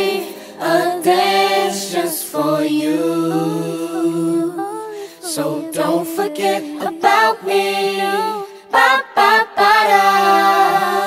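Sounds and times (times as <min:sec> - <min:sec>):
voices humming a chord: 0:00.0 - 0:08.7.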